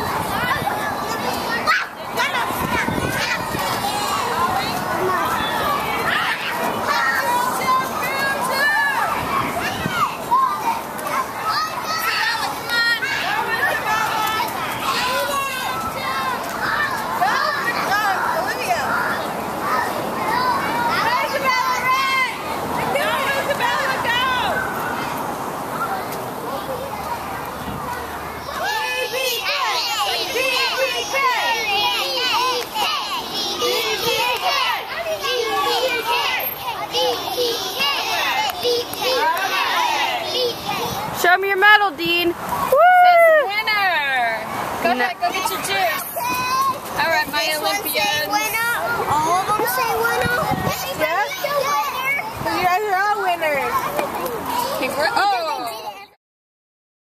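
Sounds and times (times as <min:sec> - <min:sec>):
children shouting and chattering: 0:00.0 - 0:56.2.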